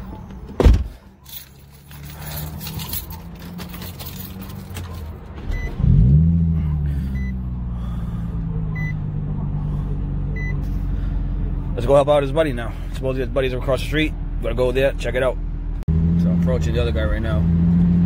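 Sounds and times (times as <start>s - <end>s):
car engine from inside cabin: 1.2s - 18.0s.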